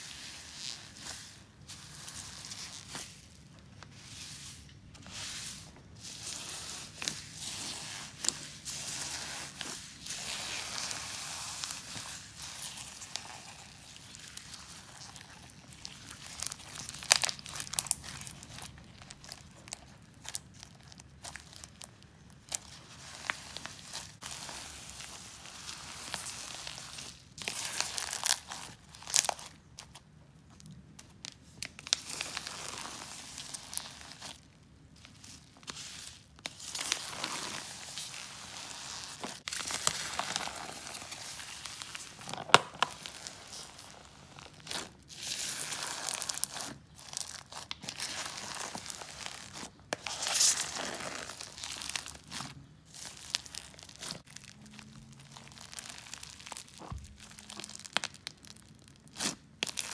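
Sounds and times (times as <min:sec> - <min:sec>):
crunchy slime crackling: 0:00.0 - 0:59.9.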